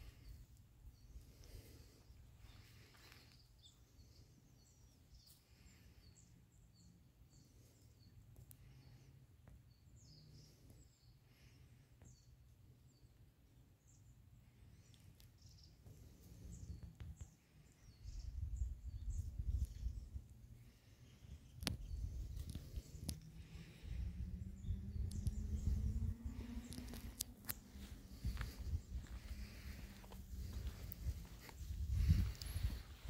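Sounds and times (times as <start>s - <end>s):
small birds chirping: 0.0s - 33.0s
uneven low rumble: 21.7s - 33.0s
low steady rumble: 21.8s - 33.0s.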